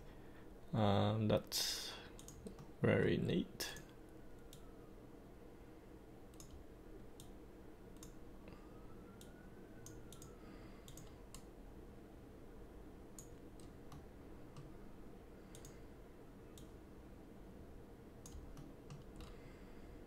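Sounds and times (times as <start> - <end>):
low room hum: 0.0 - 20.0
computer mouse clicks: 2.2 - 2.7, 6.3 - 6.6, 7.2 - 7.4, 8.0 - 8.2, 9.2 - 11.5, 13.2 - 14.7, 15.5 - 15.8, 16.5 - 16.8, 18.2 - 19.4.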